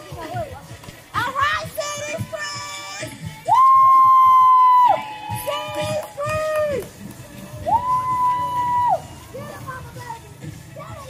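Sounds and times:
steady drum beats: 0:00.0 - 0:11.0.

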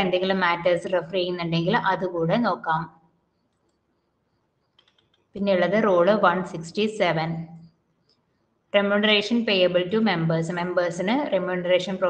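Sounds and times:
woman speaking: 0:00.0 - 0:02.9, 0:05.4 - 0:07.5, 0:08.8 - 0:12.0
computer clicks: 0:04.6 - 0:05.3.

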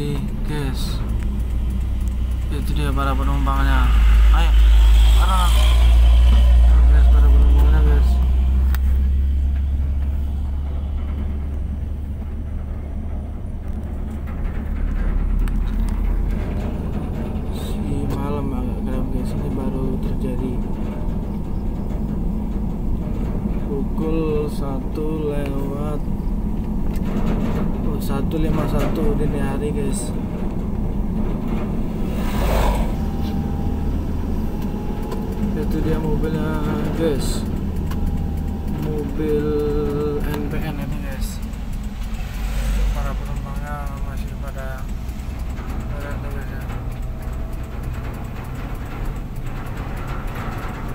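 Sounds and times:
vehicle engine and road noise: 0:00.0 - 0:50.9.

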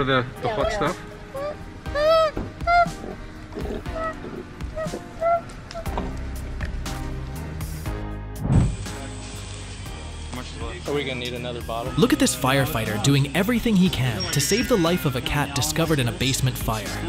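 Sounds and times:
background music: 0:00.0 - 0:17.0
koala crying out: 0:00.5 - 0:05.9, 0:14.2 - 0:15.3
dull thump: 0:08.4 - 0:08.8.

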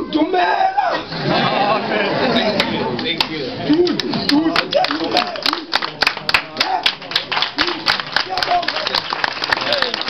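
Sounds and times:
voices: 0:00.0 - 0:10.0
hands clapping: 0:02.6 - 0:10.0.

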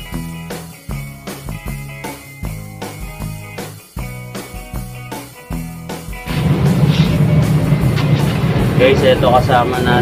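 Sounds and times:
background music: 0:00.0 - 0:10.0
vehicle engine rumbling past: 0:06.3 - 0:10.0
man talking: 0:08.8 - 0:10.0.

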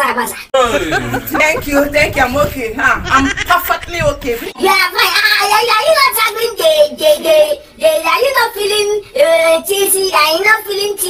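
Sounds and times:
child-like voice singing: 0:04.5 - 0:11.0.

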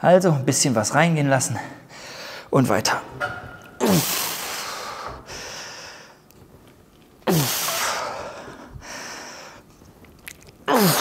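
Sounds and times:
man breathing hard: 0:01.9 - 0:02.5, 0:04.4 - 0:06.2, 0:07.6 - 0:09.7.

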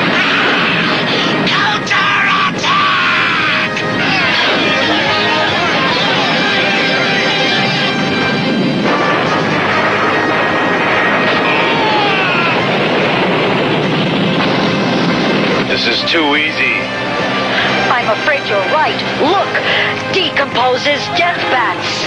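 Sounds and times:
dramatic music: 0:00.0 - 0:22.0
vehicle engine noise: 0:03.7 - 0:20.6.

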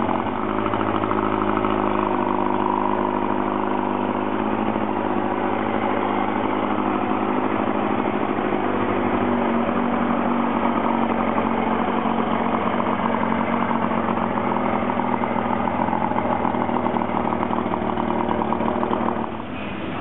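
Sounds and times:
outboard motor idling: 0:00.0 - 0:20.0.

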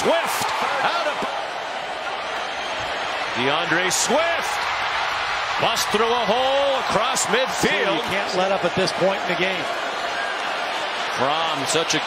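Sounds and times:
stadium crowd hum: 0:00.0 - 0:12.0.

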